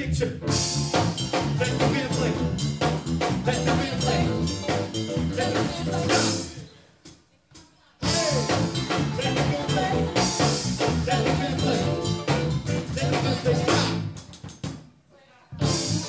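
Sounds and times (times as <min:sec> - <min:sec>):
live band playing a groove: 0:00.2 - 0:15.0, 0:15.6 - 0:16.0.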